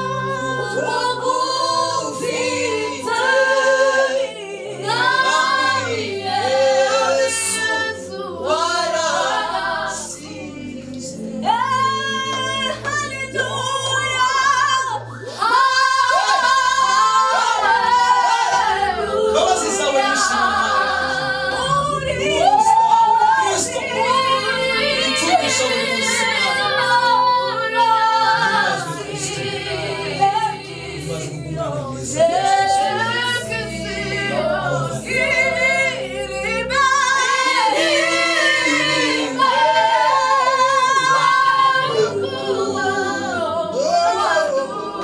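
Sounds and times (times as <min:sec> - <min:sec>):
vocal group singing gospel harmony: 0:00.0 - 0:45.0.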